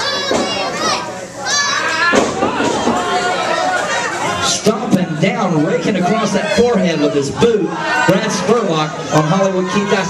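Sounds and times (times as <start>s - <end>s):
children shouting: 0.0s - 4.5s, 6.1s - 10.0s
crowd voices: 0.0s - 10.0s.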